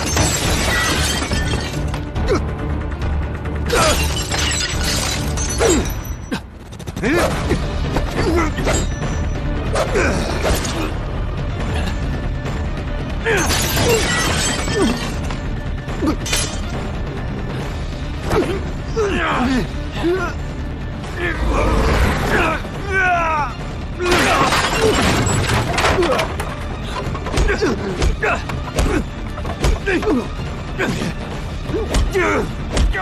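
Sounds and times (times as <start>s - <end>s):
faint film score: 0.0s - 33.0s.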